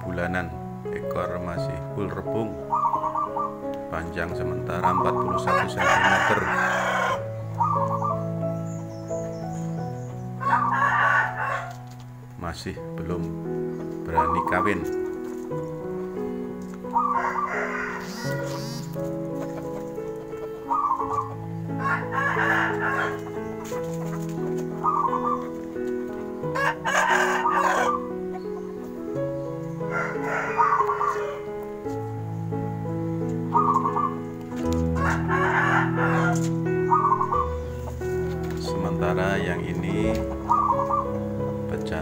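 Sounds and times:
background music with low notes: 0.0 - 42.0
rooster crowing and clucking: 4.9 - 8.1, 10.0 - 12.0, 16.9 - 19.9, 20.7 - 24.2, 26.4 - 28.8, 29.7 - 31.6, 33.5 - 39.0.

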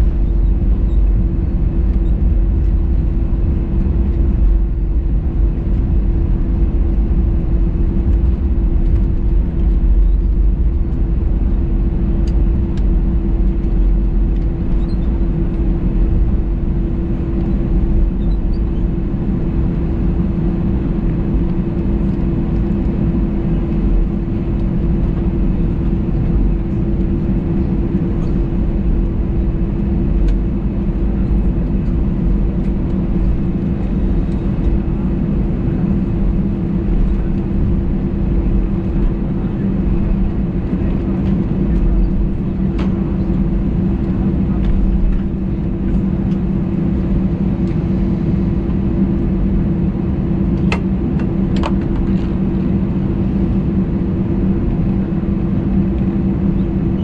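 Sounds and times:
jet engines idling in cabin: 0.0 - 57.0.

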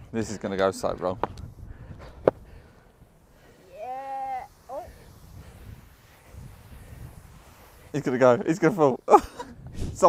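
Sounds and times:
person's high vocal cry: 3.7 - 4.9.

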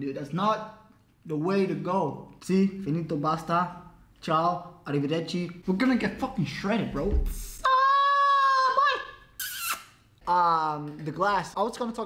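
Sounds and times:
man's falsetto yell: 7.6 - 9.8.

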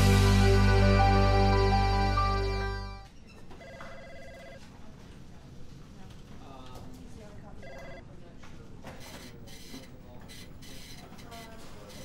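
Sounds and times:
music: 0.0 - 3.0
faint background voices: 4.5 - 12.0.

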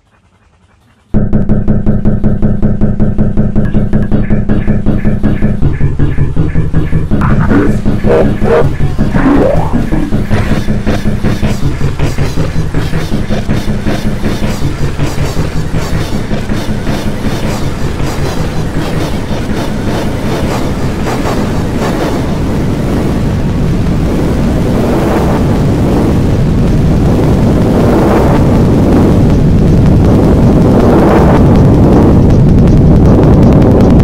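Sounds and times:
distorted electronic stutter: 0.0 - 25.6
low steady drone: 0.0 - 34.0.

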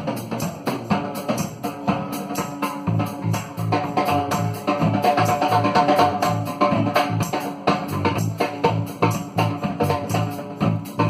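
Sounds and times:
bass guitar: 0.0 - 11.0
drum kit beat: 0.0 - 11.0.

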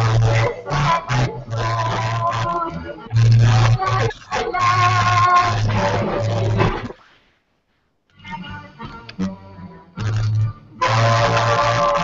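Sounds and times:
loud music with held tones: 0.0 - 6.6, 8.2 - 12.0.

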